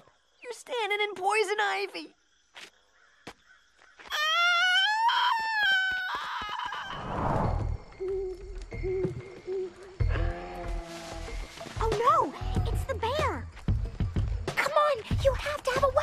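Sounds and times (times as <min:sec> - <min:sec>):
rising cartoon scream: 0:04.1 - 0:07.3
falling whoosh: 0:06.9 - 0:07.8.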